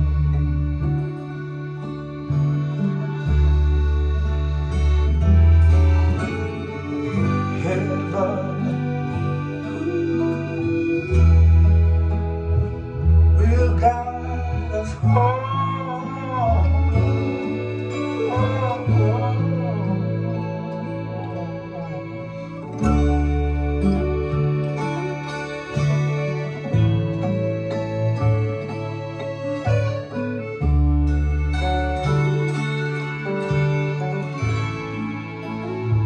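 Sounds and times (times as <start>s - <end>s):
acoustic blues guitar: 0.0s - 36.0s
deep bass line: 0.0s - 36.0s
wavering bending melody: 0.0s - 36.0s.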